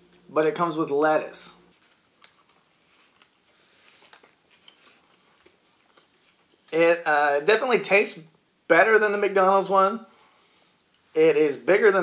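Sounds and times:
person chewing: 1.7 - 6.7.

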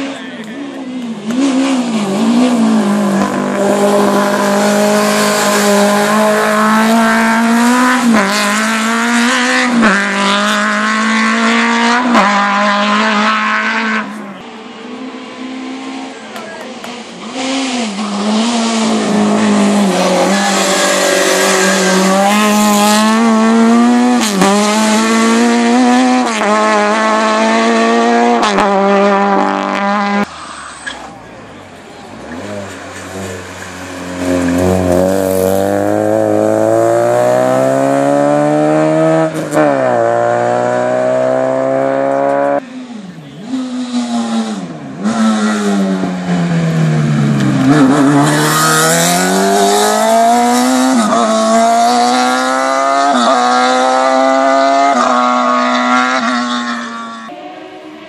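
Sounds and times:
race car engines revving: 0.0 - 58.0.

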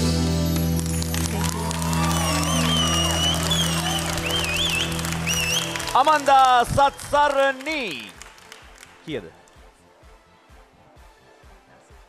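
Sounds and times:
audience applause: 0.5 - 9.1
high wavering whistles: 2.2 - 5.8.

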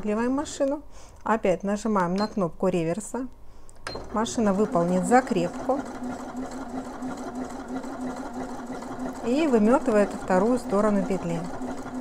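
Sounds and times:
sewing machine running: 4.0 - 12.0.

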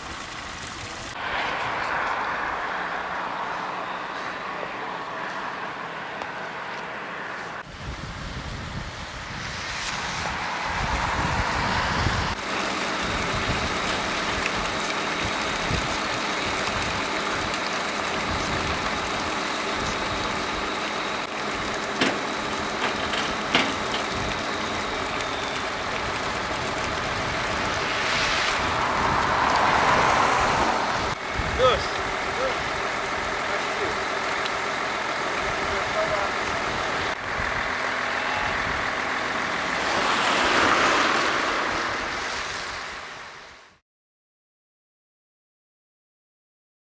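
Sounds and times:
truck engine idling: 0.0 - 7.6, 12.3 - 42.0
vehicle tyres hissing on wet road: 0.0 - 43.8.

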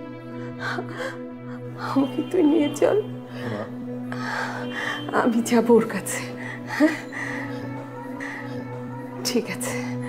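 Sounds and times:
person gasping: 3.4 - 5.1.

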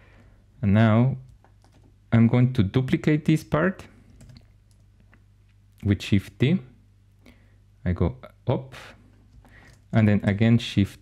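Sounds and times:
man talking: 0.6 - 1.3, 2.1 - 4.0, 5.8 - 6.8, 7.8 - 9.0, 9.9 - 11.0.

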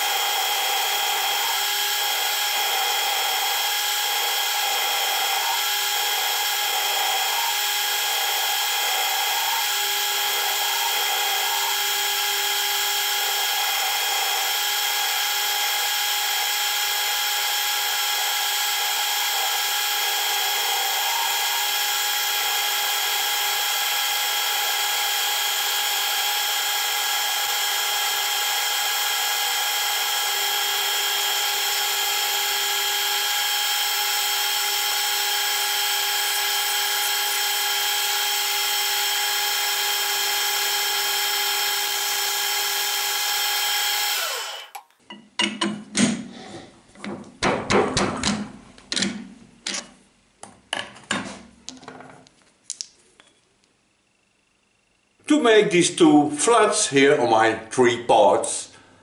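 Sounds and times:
lathe winding down: 0.0 - 44.8
metal lathe whining: 0.0 - 44.8.

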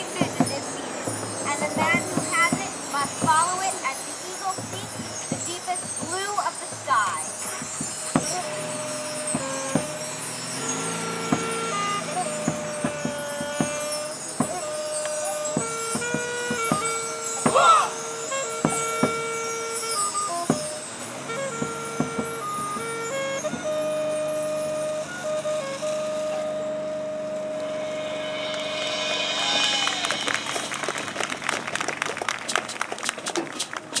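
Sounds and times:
held wind band notes: 0.0 - 34.0
percussion strikes: 0.0 - 34.0.

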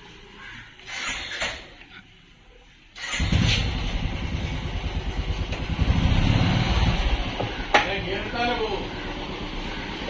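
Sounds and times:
motorcycle engine running: 3.1 - 7.7.

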